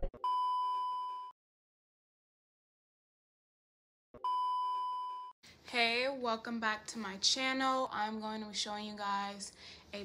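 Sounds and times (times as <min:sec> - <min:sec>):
high electronic beep: 0:00.1 - 0:01.3, 0:04.2 - 0:05.3.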